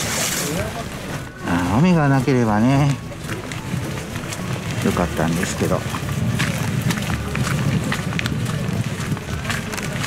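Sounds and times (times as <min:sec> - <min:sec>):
footsteps walking: 0:00.0 - 0:10.0
low rumble on microphone: 0:03.0 - 0:10.0.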